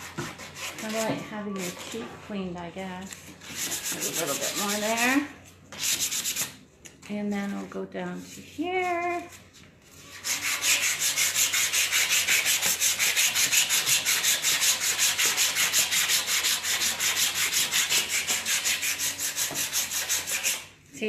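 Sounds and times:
sandpaper rasping on wood: 0.0 - 1.8, 3.4 - 6.5, 10.1 - 20.7.

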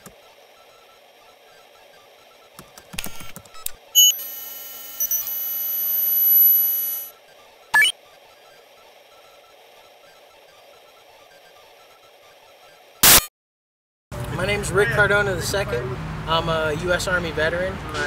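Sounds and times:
steady multi-pitch electronic tone: 3.9 - 13.2
sharp electronic beep: 4.0 - 7.1, 7.7 - 8.0, 13.0 - 13.3.

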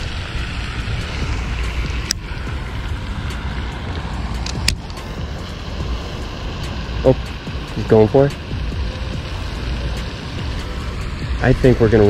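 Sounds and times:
low outdoor rumble: 0.0 - 12.0
sharp ticks: 0.7 - 12.0.

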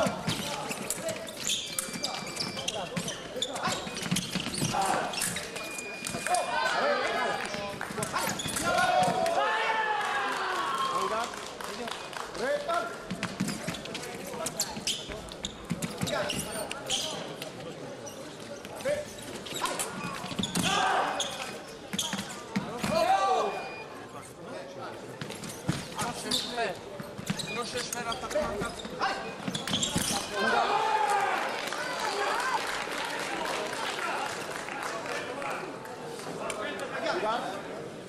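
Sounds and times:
voices and shouts echoing: 6.2 - 13.1, 18.8 - 21.7, 27.5 - 37.8.

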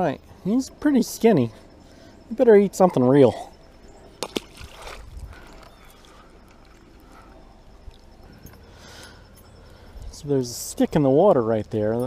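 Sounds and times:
faint water sounds: 0.0 - 12.0
fish splashing into water: 4.2 - 5.2.

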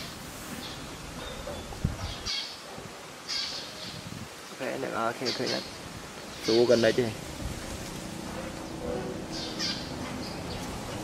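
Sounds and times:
bird calling: 3.2 - 4.1, 5.0 - 7.1, 8.3 - 11.0.

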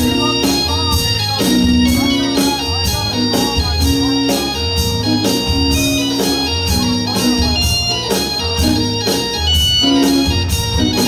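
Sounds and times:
drums steady beat: 0.0 - 11.0
electric organ playing lead: 0.0 - 11.0
live rock band: 0.0 - 11.0.

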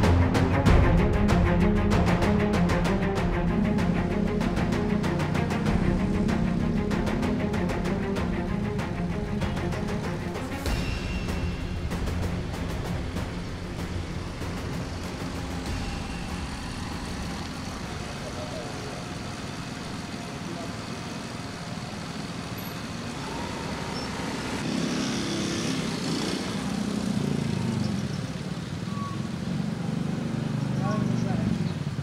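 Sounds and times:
traffic noise: 0.0 - 32.0
people talking: 17.9 - 19.3, 30.8 - 31.6.

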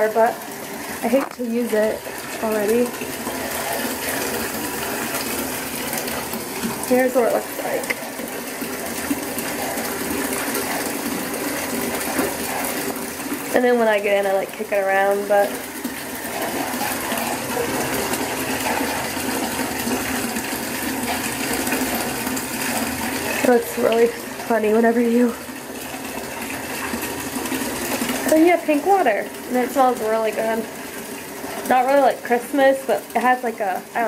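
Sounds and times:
bath bomb fizzing: 0.0 - 34.0.

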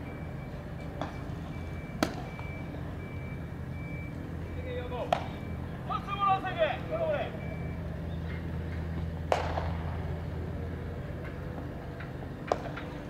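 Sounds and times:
steady low hum: 0.0 - 13.0
players calling out: 0.9 - 9.7
sharp crack: 9.2 - 10.0.

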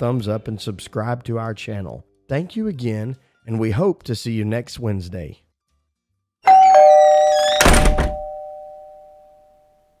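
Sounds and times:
two-note doorbell chime: 6.5 - 9.9.

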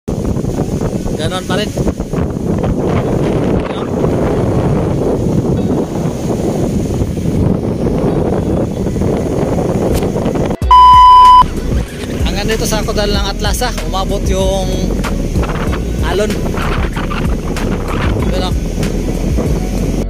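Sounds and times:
wind rumbling on microphone: 0.1 - 20.0
surf: 10.6 - 20.0
electronic beep: 10.7 - 11.5.

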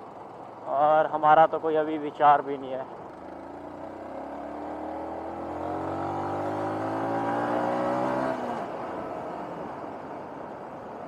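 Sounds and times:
wind and road noise: 0.0 - 11.0
motorcycle engine accelerating: 3.0 - 10.3.

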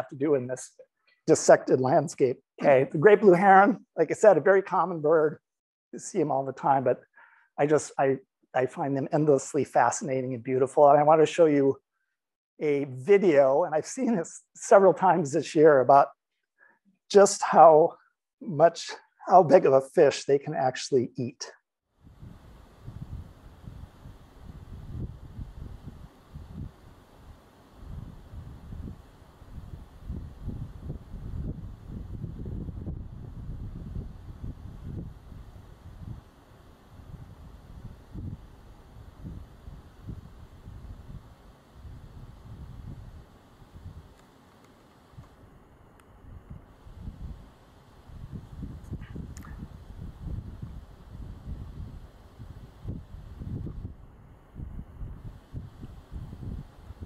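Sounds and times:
wind buffeting microphone: 22.0 - 36.3, 36.9 - 44.2, 46.2 - 57.0.

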